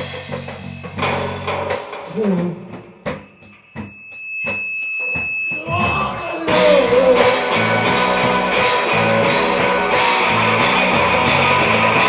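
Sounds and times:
electric guitar notes: 0:00.0 - 0:12.0
steady high-pitched ring: 0:03.0 - 0:09.0.

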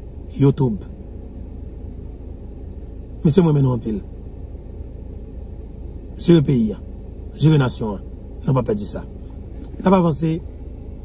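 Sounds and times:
low rumble inside car cabin: 0:00.0 - 0:11.0.

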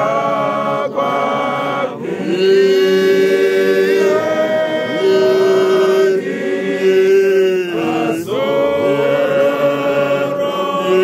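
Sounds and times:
men singing a hymn: 0:00.0 - 0:11.0.

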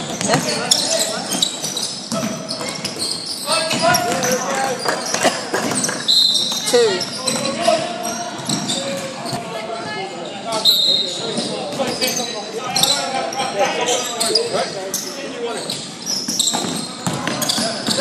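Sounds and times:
basketball bouncing: 0:00.1 - 0:00.6, 0:16.5 - 0:18.0.

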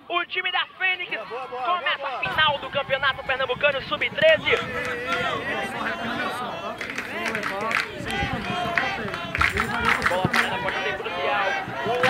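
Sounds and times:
rapid talking: 0:00.0 - 0:12.0.

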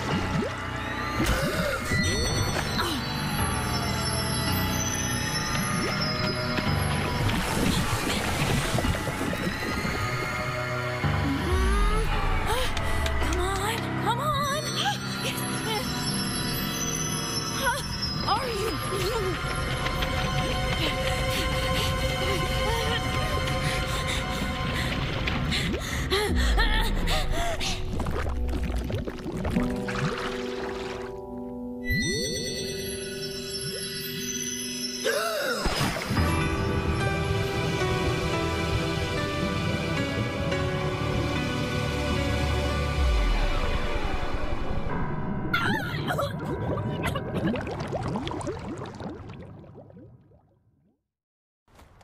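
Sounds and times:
water sloshing and splashing: 0:00.0 - 0:03.1, 0:05.4 - 0:10.8, 0:18.1 - 0:26.3, 0:27.5 - 0:31.6, 0:35.6 - 0:36.6, 0:45.7 - 0:50.4
dramatic background music: 0:00.0 - 0:48.0
girl gasping and sobbing: 0:20.7 - 0:28.0, 0:35.0 - 0:35.7, 0:45.6 - 0:47.4.

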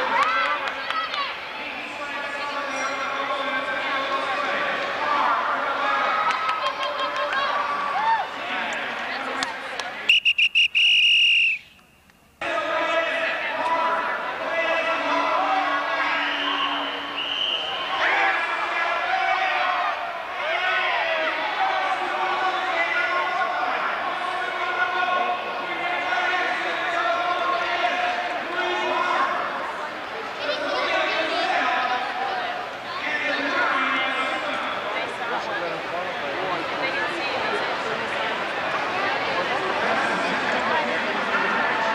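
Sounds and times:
reverberant crowd hubbub: 0:00.0 - 0:41.9.

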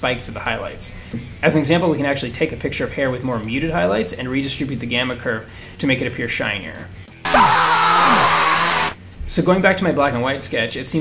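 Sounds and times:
distorted vocal scream: 0:07.3 - 0:09.0.

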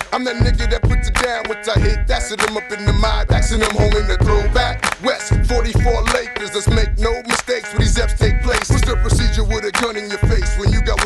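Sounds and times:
rapping over a heavy bass beat: 0:00.0 - 0:11.0.

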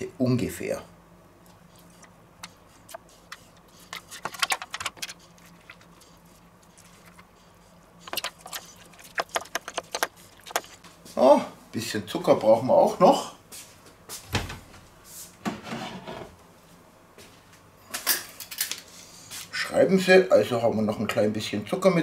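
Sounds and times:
teaspoon scraping plastic tubs: 0:01.6 - 0:07.4, 0:08.0 - 0:10.8.

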